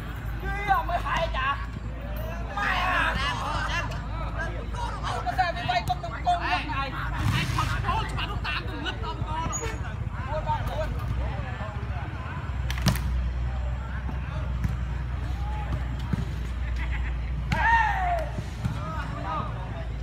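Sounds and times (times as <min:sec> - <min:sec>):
players calling and chatting: 0:00.0 - 0:20.0
loud shout: 0:17.5 - 0:19.0.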